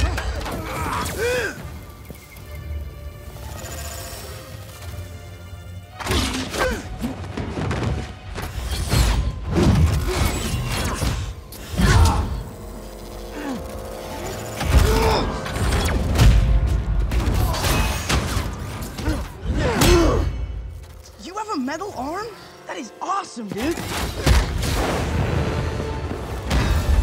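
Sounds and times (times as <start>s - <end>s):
film score music: 0.0s - 27.0s.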